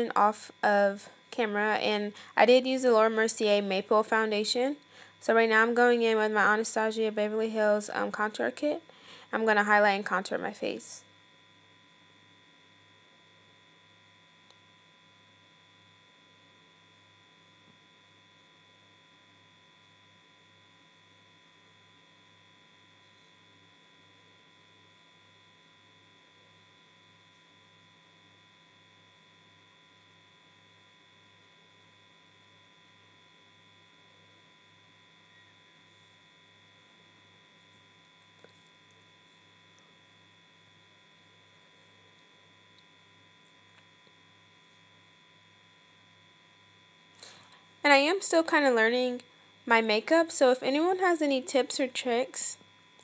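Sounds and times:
faint electrical hum: 0.0s - 53.0s.

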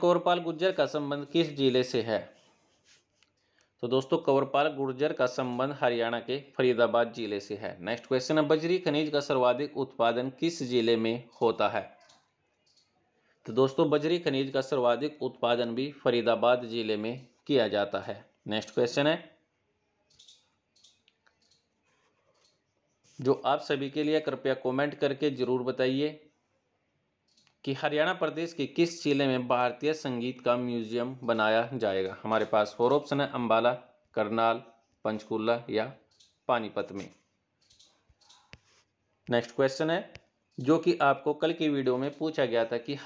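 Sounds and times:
person speaking: 0.0s - 3.2s, 3.8s - 12.2s, 13.5s - 19.4s, 23.1s - 26.2s, 27.4s - 43.0s
soft rustles: 2.3s - 3.5s, 38.4s - 39.2s
faint clicks: 20.0s - 22.7s, 36.0s - 39.3s
sharp click: 20.1s - 21.7s.

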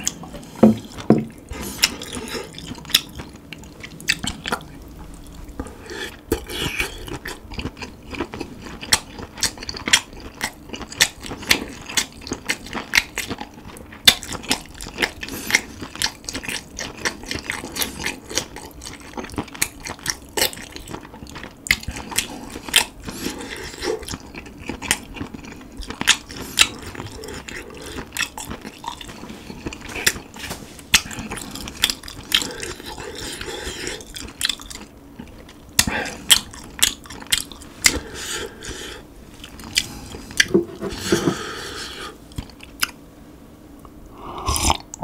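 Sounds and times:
close chewing clicks and smacks: 7.0s - 22.9s, 34.0s - 38.0s.

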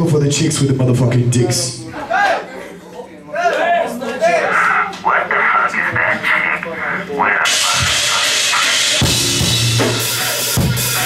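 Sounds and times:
band playing: 4.8s - 11.0s.

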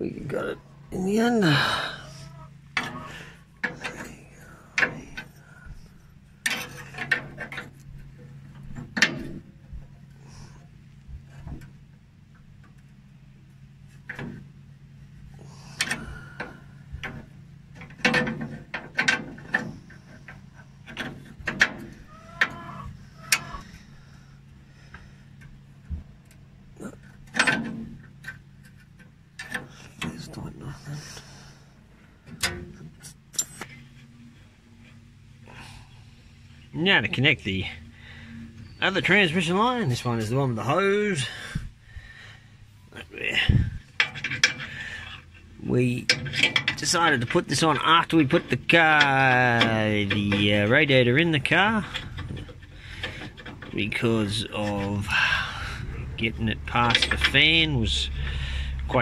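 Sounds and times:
low hum: 0.0s - 59.0s.

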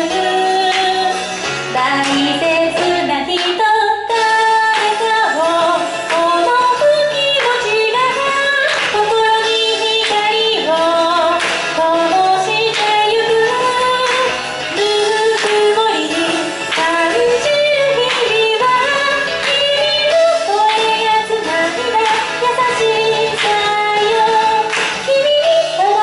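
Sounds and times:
pop music accompaniment with beat: 0.0s - 26.0s
woman singing into a microphone: 0.0s - 26.0s.

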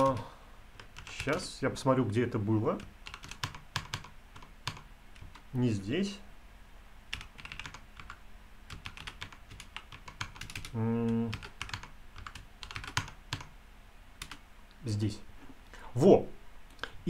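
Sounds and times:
typing on computer keyboard: 0.0s - 1.4s, 2.8s - 5.4s, 7.1s - 13.5s, 14.2s - 14.4s
person humming: 10.7s - 11.5s.

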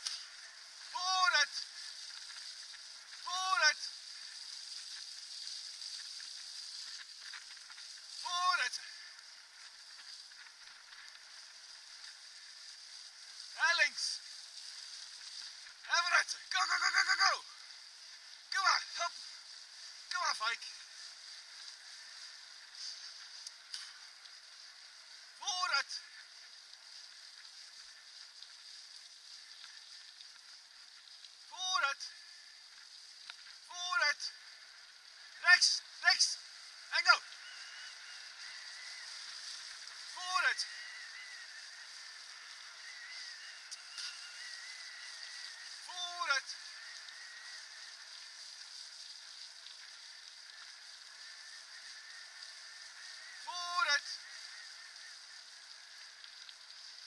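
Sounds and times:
bicycle riding rush: 0.0s - 57.0s
short falling calls: 35.2s - 56.2s.

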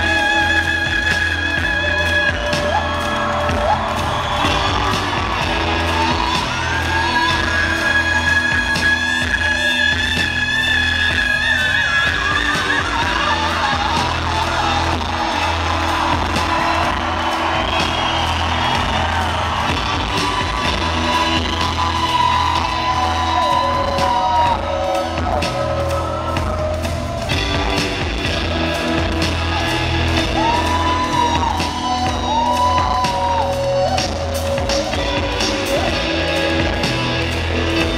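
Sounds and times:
heavy bass: 0.0s - 37.9s
live rock band playing: 0.0s - 37.9s.

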